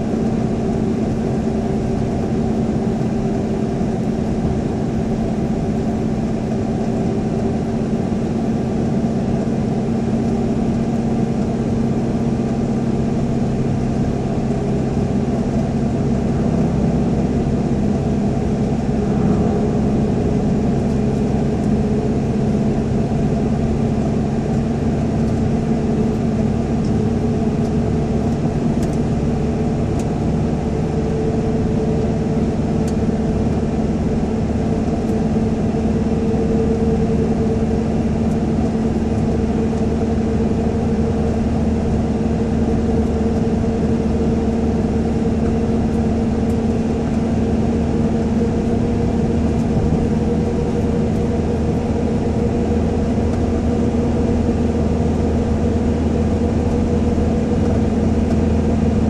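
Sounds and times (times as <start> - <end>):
car engine and tyre drone: 0.0 - 59.0.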